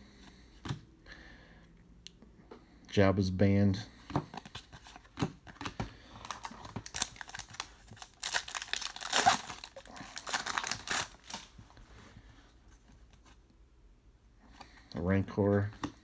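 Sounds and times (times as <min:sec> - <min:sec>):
foil wrapper tearing and crinkling: 0:06.3 - 0:11.5.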